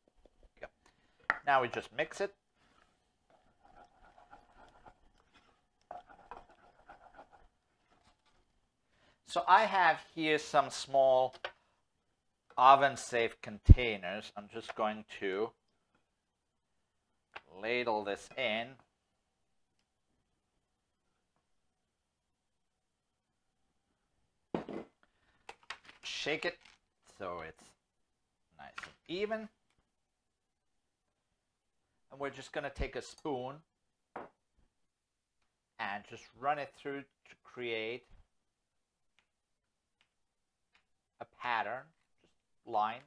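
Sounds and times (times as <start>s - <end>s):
wooden spoon stirring thick mash: 2.6s - 8.6s
dish set down on wooden board: 24.6s - 24.9s.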